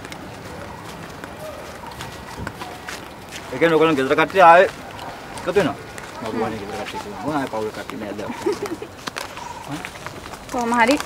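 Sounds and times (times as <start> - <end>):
faint voices: 0.0 - 11.0
outdoor background hiss: 0.0 - 11.0
soft footsteps walking: 0.0 - 11.0.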